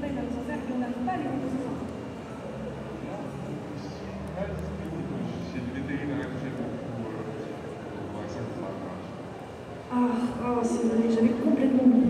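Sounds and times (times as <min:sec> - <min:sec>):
faint voices over loudspeakers: 0:00.0 - 0:12.0.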